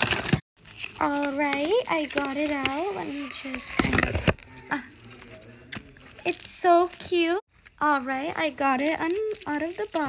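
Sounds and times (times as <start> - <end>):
toys clinking and rattling: 0.0 - 10.0.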